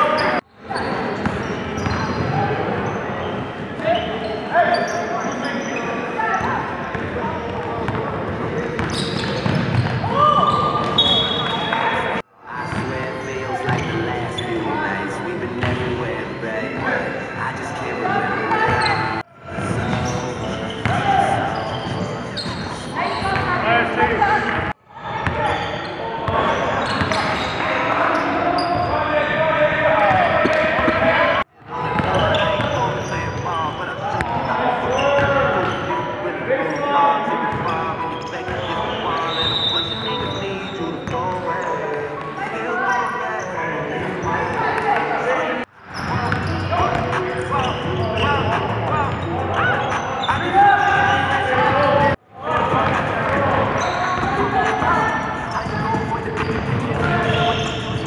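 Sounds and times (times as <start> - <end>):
hubbub of players' voices: 0.0 - 58.0.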